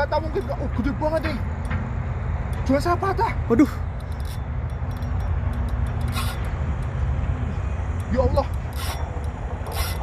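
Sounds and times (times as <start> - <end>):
fishing reel drag rasping: 3.9 - 7.0, 8.4 - 10.0.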